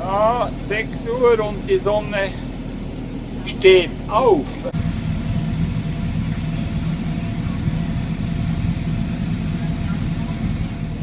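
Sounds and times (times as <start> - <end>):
faint steady whine: 0.0 - 11.0
tractor engine droning: 0.0 - 11.0.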